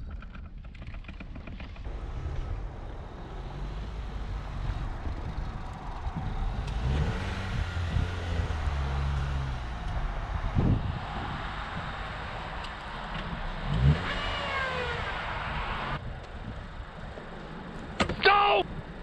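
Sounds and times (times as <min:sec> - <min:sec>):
car driving through snow: 0:01.4 - 0:18.0
car engine revving: 0:01.8 - 0:16.0.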